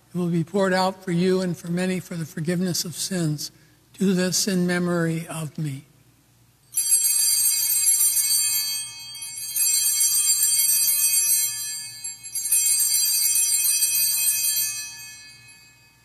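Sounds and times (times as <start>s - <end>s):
altar bells ringing: 6.7s - 16.0s.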